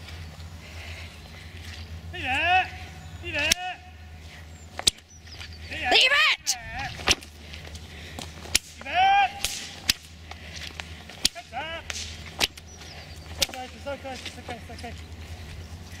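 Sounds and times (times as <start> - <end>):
whip cracking sharply: 8.5 - 10.2, 11.2 - 12.6.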